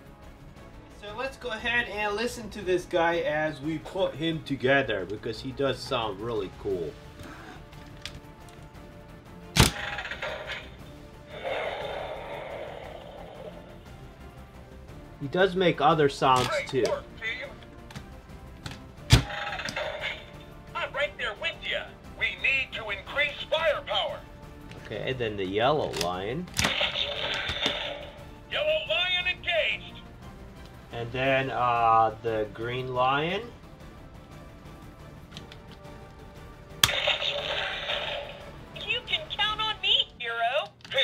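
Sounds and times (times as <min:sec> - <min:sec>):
plastic part snapping into place: 0:09.6 - 0:09.8, 0:17.9 - 0:19.9
toy sound effects: 0:26.6 - 0:28.2, 0:36.8 - 0:38.4.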